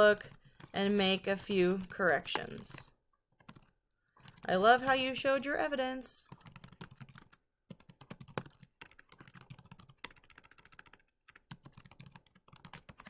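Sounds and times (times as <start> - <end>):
typing on computer keyboard: 0.0 - 5.0, 6.2 - 13.0.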